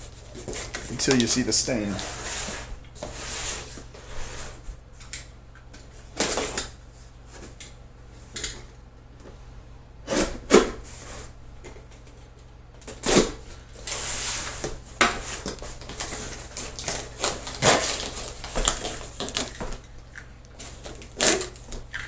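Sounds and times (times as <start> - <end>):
cardboard scraping across wood: 1.9 - 4.7.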